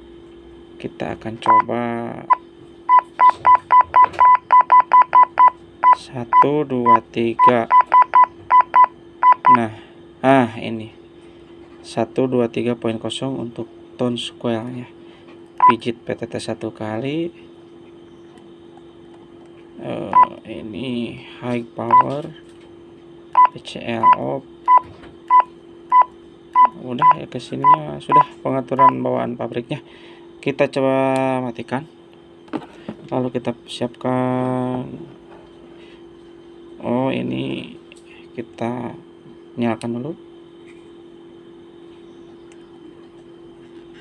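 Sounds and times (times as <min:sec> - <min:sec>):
faint steady hum: 0:00.0 - 0:44.0
handheld radio keypad beeping: 0:01.5 - 0:01.7, 0:02.9 - 0:09.6, 0:23.4 - 0:29.0.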